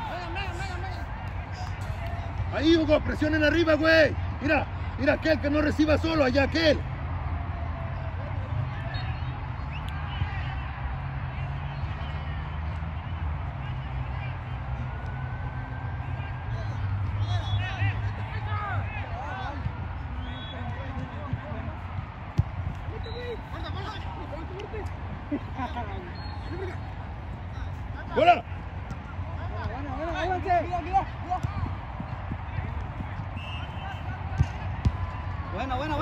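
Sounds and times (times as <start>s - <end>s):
distant players shouting: 16.0s - 36.0s.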